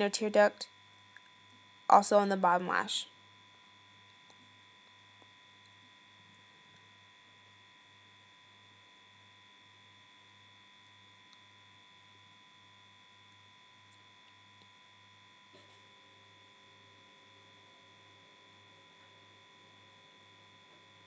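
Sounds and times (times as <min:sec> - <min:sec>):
faint pulsing electrical hum: 0:00.0 - 0:21.0.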